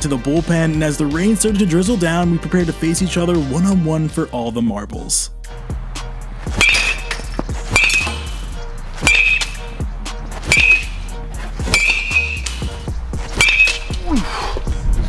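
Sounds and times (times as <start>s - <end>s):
background music: 0.0s - 15.0s
metal bat hitting balls: 6.5s - 14.1s.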